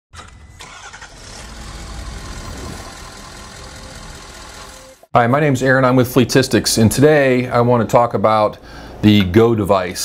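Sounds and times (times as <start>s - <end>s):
vehicle engine rumbling: 0.2s - 5.1s.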